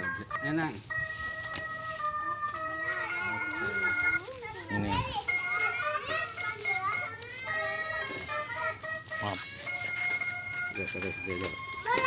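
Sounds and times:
electronic jingle beeping tune: 0.0 - 6.9
children chattering: 0.0 - 12.0.

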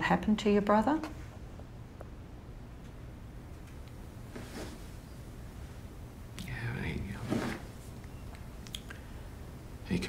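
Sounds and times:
man whispering breathily: 6.4 - 7.2.

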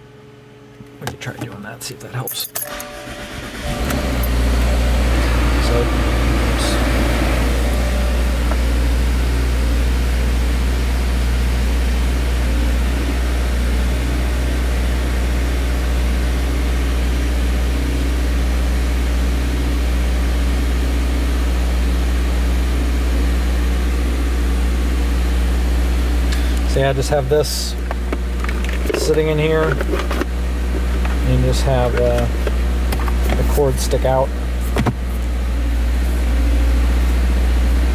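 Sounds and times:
car engine idling: 2.7 - 37.9.

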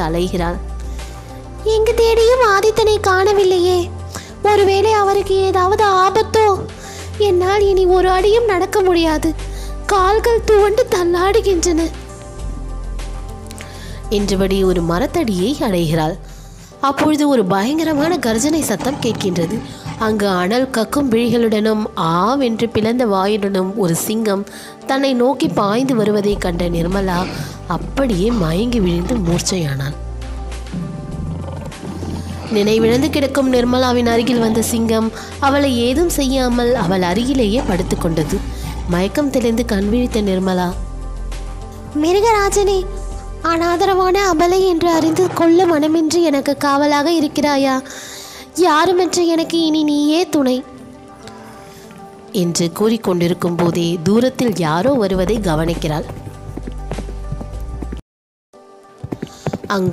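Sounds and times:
background music: 0.0 - 58.0, 58.6 - 59.9
lion roaring: 17.7 - 20.8, 28.2 - 30.0, 30.6 - 35.5, 36.5 - 39.6, 44.6 - 46.3
horse hooves clip-clopping: 54.8 - 58.0, 58.8 - 59.9.

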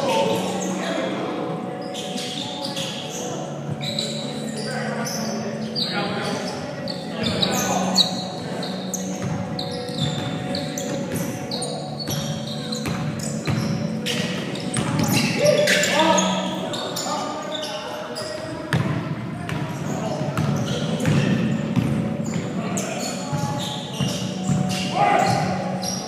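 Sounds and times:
sneakers squeaking on hardwood floor: 0.0 - 26.0
players calling out: 1.8 - 18.6
basketball bouncing: 18.7 - 22.0.

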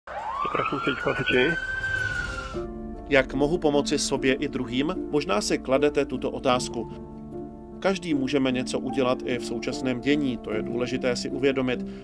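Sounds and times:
siren winding up: 0.1 - 2.7.

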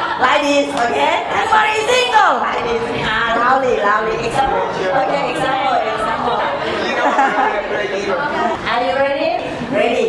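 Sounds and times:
students chattering: 0.0 - 10.0.

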